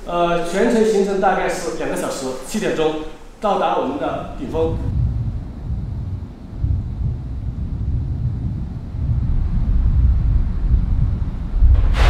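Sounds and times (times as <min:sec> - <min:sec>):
low wind rumble: 0:00.0 - 0:12.0.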